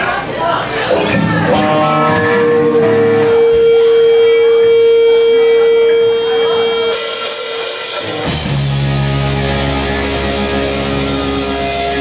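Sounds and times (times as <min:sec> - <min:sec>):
electric guitar ringing tone: 0:01.1 - 0:12.0.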